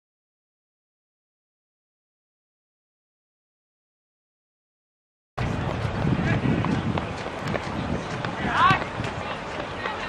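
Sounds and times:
players shouting: 0:06.2 - 0:10.0.

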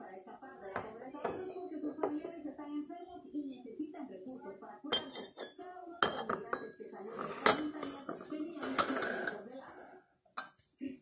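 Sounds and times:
teacup and saucer clinking: 0:04.9 - 0:09.4, 0:10.4 - 0:10.6.

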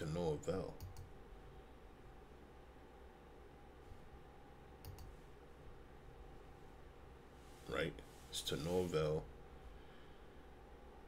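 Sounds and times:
faint clicks: 0:04.8 - 0:05.1.

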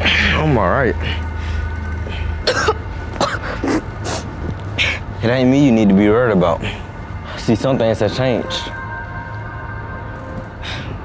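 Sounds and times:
boy coughing: 0:02.4 - 0:04.3.

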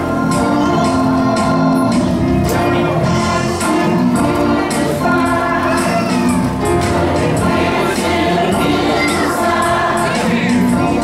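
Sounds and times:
church choir singing: 0:00.0 - 0:11.0
steady beat: 0:00.2 - 0:11.0.

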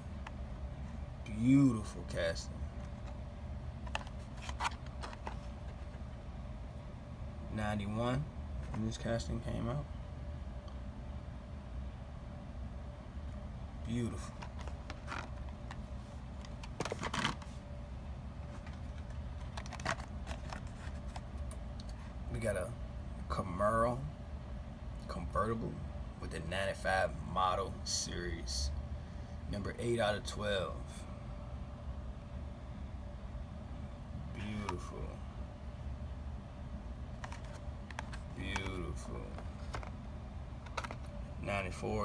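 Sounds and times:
low steady background hum: 0:00.0 - 0:42.0
low steady rumble: 0:00.0 - 0:42.0
plastic packaging clicks and crinkles: 0:16.4 - 0:17.5, 0:18.6 - 0:22.0, 0:40.6 - 0:41.1.

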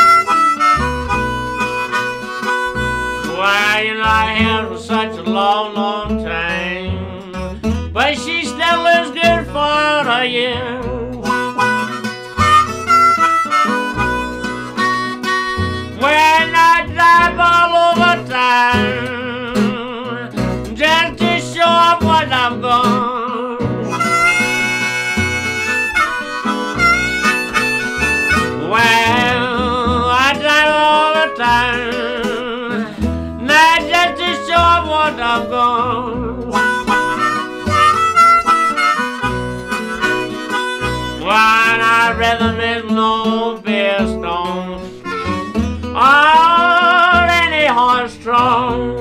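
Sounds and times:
blues harmonica solo: 0:00.0 - 0:04.7, 0:07.2 - 0:10.2, 0:10.8 - 0:19.1, 0:23.6 - 0:42.6, 0:44.8 - 0:47.5
guitars playing: 0:00.0 - 0:49.0
plucked double bass: 0:00.0 - 0:49.0.

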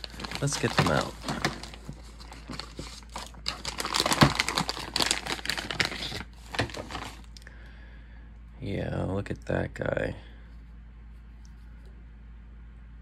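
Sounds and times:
plastic bag crinkling: 0:00.0 - 0:07.4.

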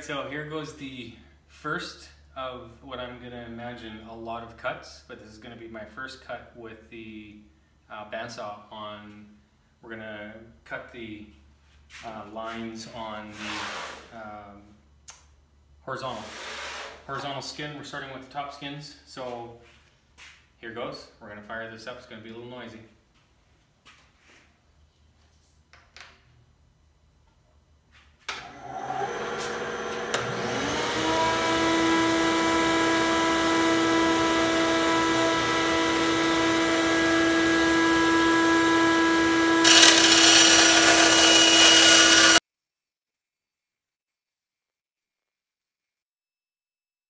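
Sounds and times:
bandsaw motor whine: 0:28.4 - 0:42.4
bandsaw blade cutting: 0:39.6 - 0:42.4.

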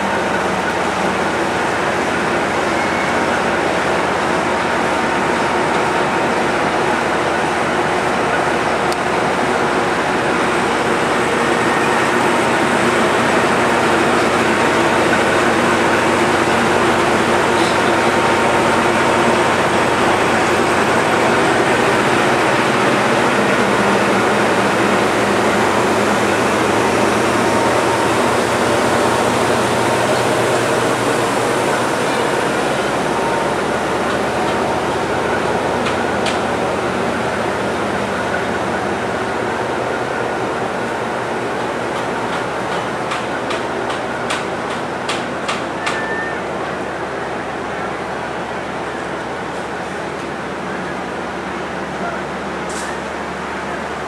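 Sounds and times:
diesel locomotive idling: 0:00.0 - 0:54.0.

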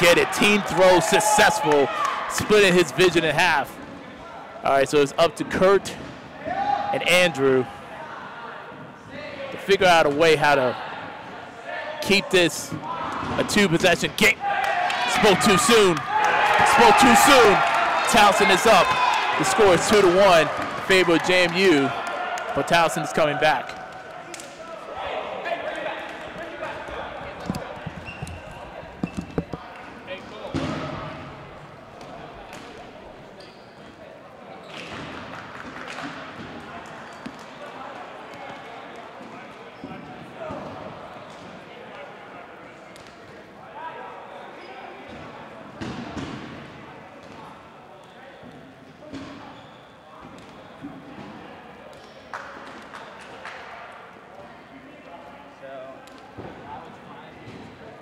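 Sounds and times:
players shouting: 0:00.0 - 0:03.6, 0:09.3 - 0:28.1.

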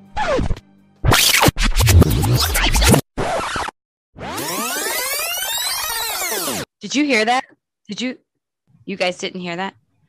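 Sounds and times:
record scratching: 0:00.2 - 0:06.7
electronic music: 0:01.0 - 0:03.0, 0:04.3 - 0:06.7.

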